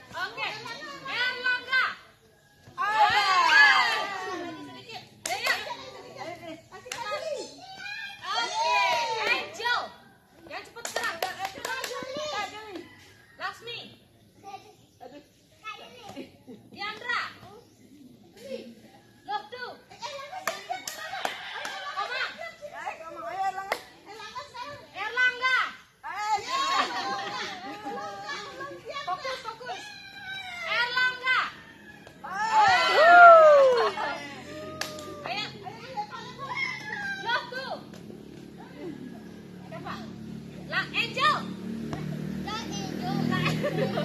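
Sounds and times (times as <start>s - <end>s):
children chattering and calling: 0.0s - 10.4s, 14.2s - 44.0s.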